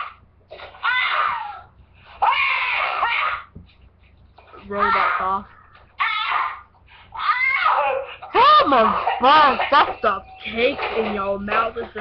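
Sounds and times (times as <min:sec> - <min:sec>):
high-pitched voice shrieking: 0:00.8 - 0:03.5, 0:04.7 - 0:06.6, 0:07.2 - 0:09.0.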